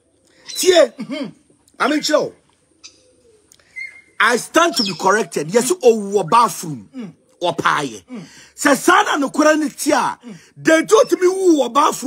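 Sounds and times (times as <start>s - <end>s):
man speaking: 0.5s - 2.4s, 4.2s - 12.0s
faint bird call: 2.8s - 7.4s.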